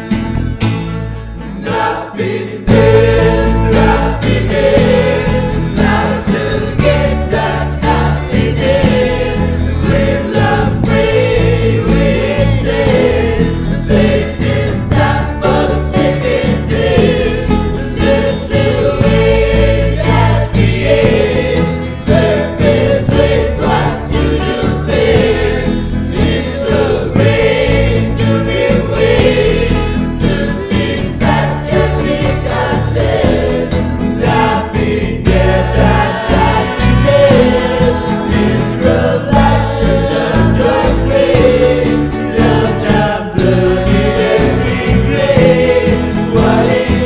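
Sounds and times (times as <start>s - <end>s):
folk song with layered voices: 0.0s - 47.0s
layered singing voices: 1.4s - 47.0s.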